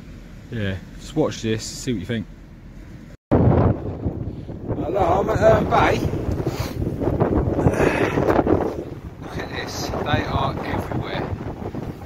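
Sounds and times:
wind buffeting microphone: 3.3 - 12.0.

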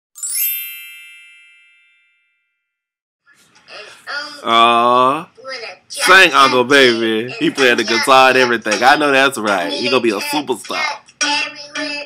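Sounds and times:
bright ringing chime: 0.2 - 2.7.

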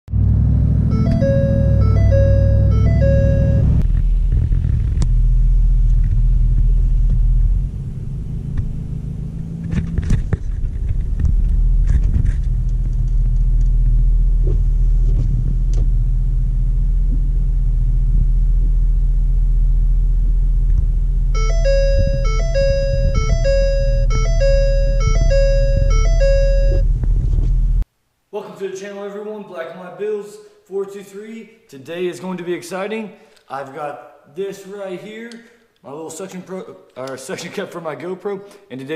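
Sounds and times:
diesel engine rumble: 0.1 - 27.8
repeating electronic chime: 0.9 - 3.8, 21.4 - 26.9.

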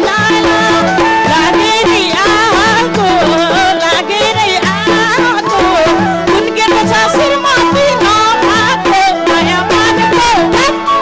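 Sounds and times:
live folk music: 0.0 - 11.0.

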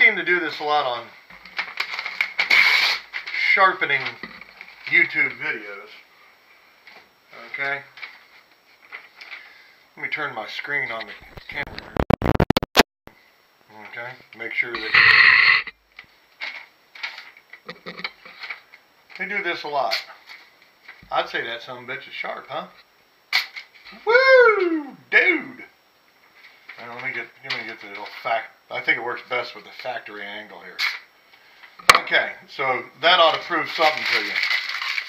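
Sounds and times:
paper ripping: 2.4 - 3.1
paper crackling: 33.6 - 35.0.

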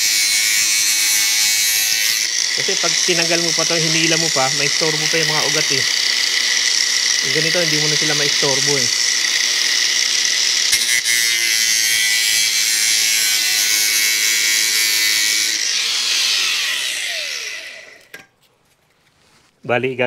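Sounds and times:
grinder spinning down whine: 0.0 - 18.2
angle grinder cutting plastic: 0.0 - 18.3.

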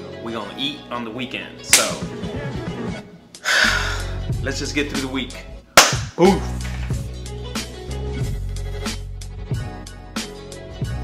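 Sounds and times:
background music: 0.0 - 11.0
man sighing: 3.4 - 4.2.

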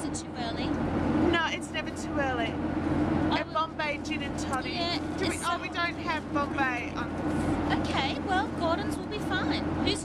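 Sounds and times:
people talking: 0.0 - 2.6, 3.3 - 7.1, 7.7 - 10.0
airliner cabin drone: 0.0 - 10.0.

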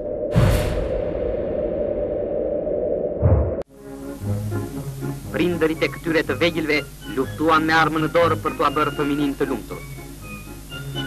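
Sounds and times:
low noisy drone sound effect: 0.0 - 10.2.

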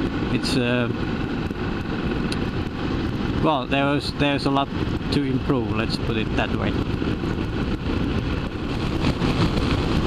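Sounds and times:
motorcycle engine running: 0.0 - 10.0
road noise: 0.0 - 10.0
wind noise: 0.0 - 10.0.

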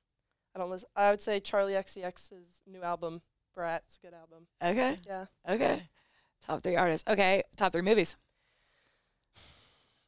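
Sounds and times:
woman speaking: 0.6 - 5.9, 6.5 - 8.2.

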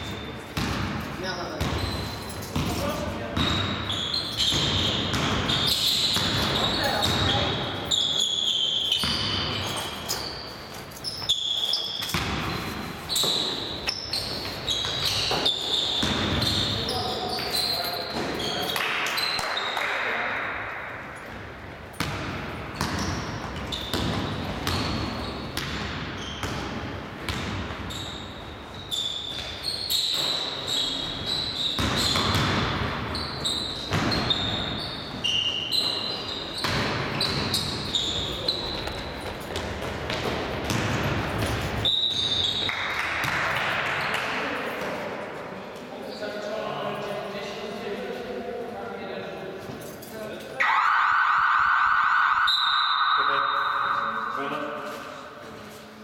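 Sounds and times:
basketball bouncing on court: 0.0 - 8.0, 8.9 - 10.3, 11.2 - 19.5, 21.2 - 28.5, 29.2 - 34.9, 35.8 - 44.2
sneakers squeaking on floor: 0.0 - 48.0, 52.4 - 56.0.

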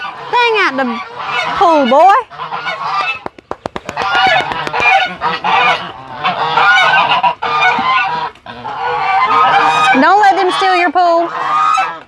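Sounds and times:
geese honking: 0.0 - 12.0
sharp clicks: 3.0 - 5.1.

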